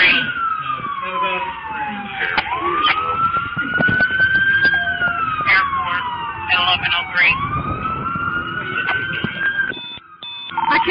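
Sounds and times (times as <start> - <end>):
emergency siren wailing: 0.0 - 10.9.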